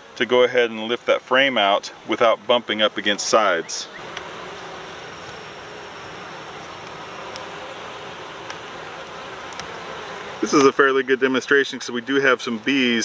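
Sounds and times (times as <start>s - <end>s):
bees buzzing: 1.9s - 13.0s.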